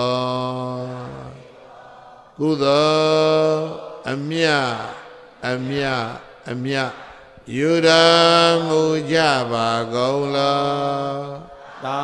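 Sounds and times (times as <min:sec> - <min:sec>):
man chanting: 0:00.0 - 0:01.5, 0:02.4 - 0:12.0.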